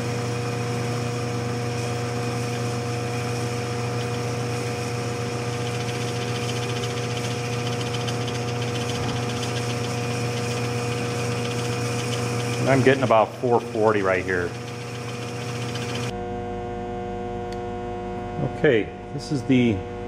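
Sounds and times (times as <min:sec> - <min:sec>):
woodworking machine motor humming: 0:00.0 - 0:16.2.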